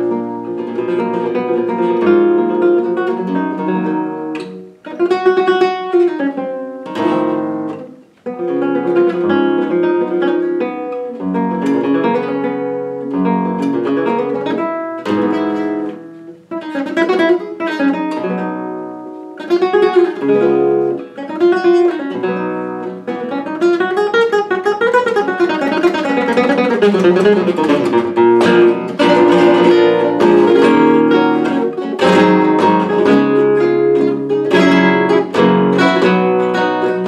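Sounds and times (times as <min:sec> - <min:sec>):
flamenco guitar: 0:00.0 - 0:37.0.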